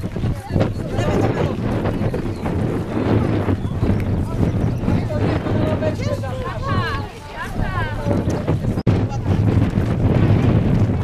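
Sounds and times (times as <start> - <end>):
people's voices: 0.0 - 10.3
wind rumbling on microphone: 0.0 - 11.0.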